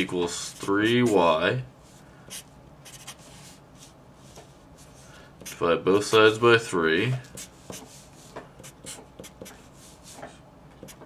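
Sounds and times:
marker writing on paper: 0:02.3 - 0:03.4, 0:07.3 - 0:11.0.

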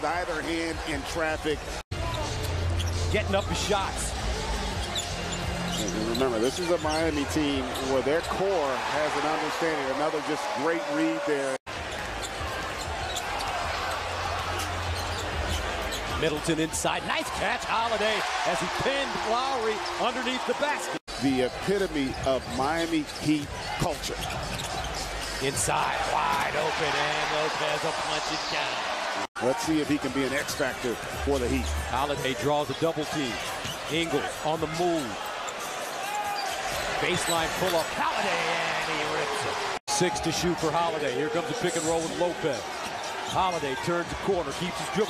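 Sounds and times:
arena crowd noise: 0:00.0 - 0:45.0.

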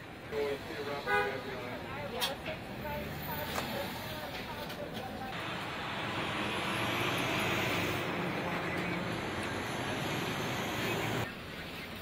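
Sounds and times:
vehicle passing: 0:05.4 - 0:11.3.

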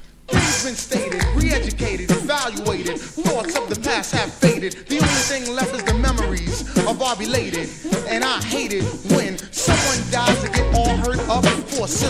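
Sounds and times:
rapping over a drum beat: 0:00.3 - 0:12.0.

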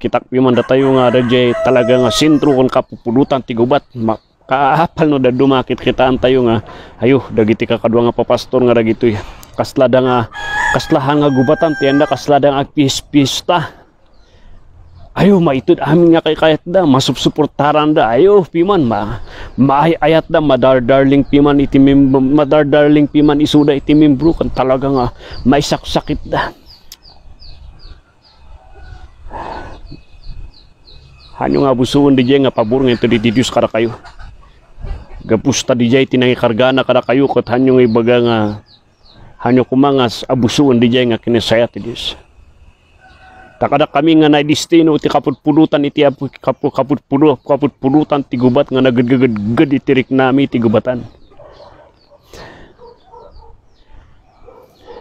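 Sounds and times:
chickens clucking: 0:00.0 - 0:55.0
small bird chirping: 0:22.6 - 0:43.6, 0:44.2 - 0:55.0.

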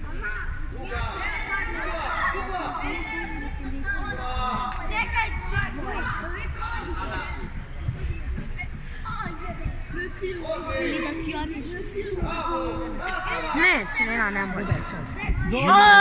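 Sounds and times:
people calling out: 0:09.9 - 0:16.0.

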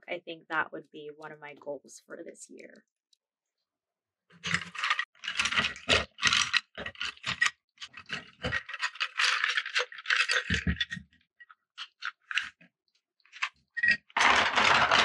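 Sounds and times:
pencils clattering in a ceramic cup: 0:04.4 - 0:12.6, 0:13.3 - 0:15.0.

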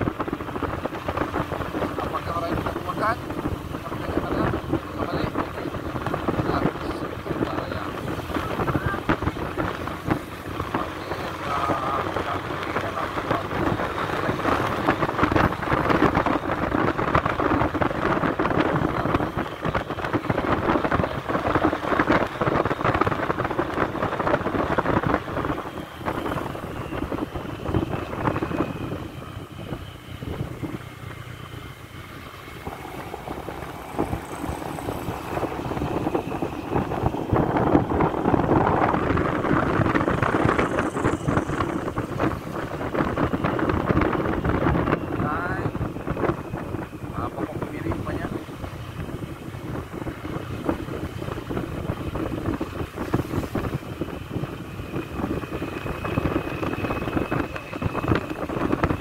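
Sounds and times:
motorcycle engine: 0:00.0 - 0:59.0
wind buffeting microphone: 0:00.0 - 0:59.0.

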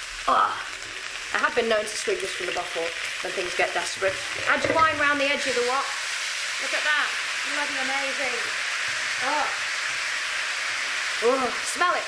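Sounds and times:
steam hissing: 0:00.0 - 0:12.0
stir-fry sizzling in a wok: 0:00.0 - 0:12.0.

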